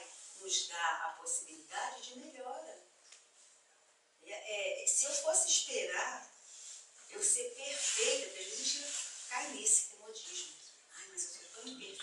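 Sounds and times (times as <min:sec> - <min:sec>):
woman speaking: 0:00.0 - 0:02.9, 0:04.2 - 0:06.4, 0:07.1 - 0:12.0.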